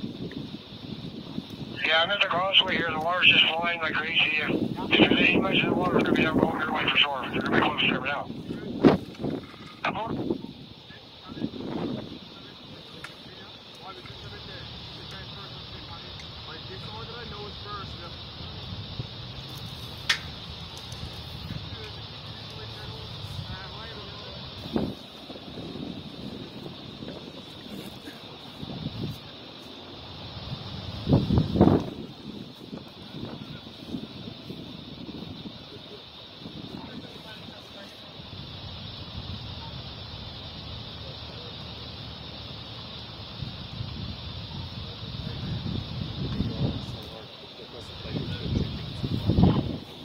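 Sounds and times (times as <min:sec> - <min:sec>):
wind hiss: 0:00.0 - 0:50.0
faint indistinct voices: 0:01.8 - 0:20.0, 0:31.9 - 0:50.0.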